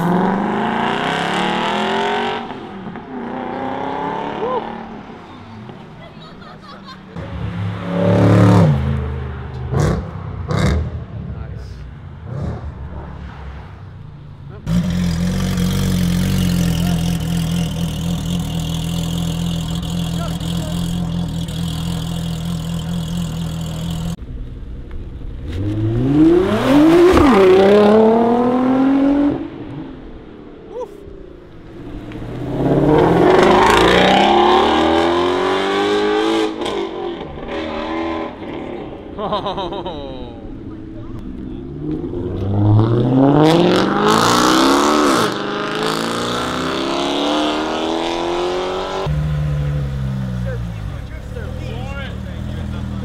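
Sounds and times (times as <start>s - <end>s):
car accelerating hard: 7.2s - 11.5s, 25.4s - 29.8s, 31.7s - 39.1s, 40.7s - 53.0s
steady sports car engine note: 14.2s - 26.1s.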